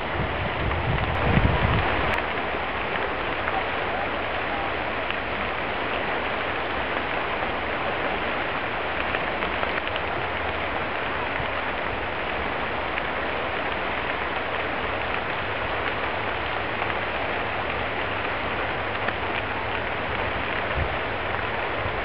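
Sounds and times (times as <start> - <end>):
fire popping: 0.0 - 22.0
wildfire crackling hiss: 0.0 - 22.0.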